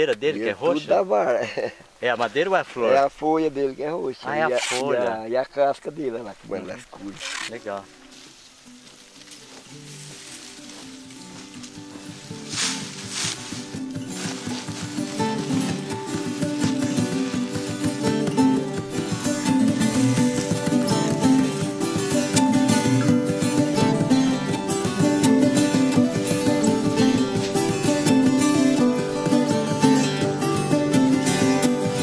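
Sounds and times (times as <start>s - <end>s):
plucked acoustic guitar music: 6.6s - 32.0s.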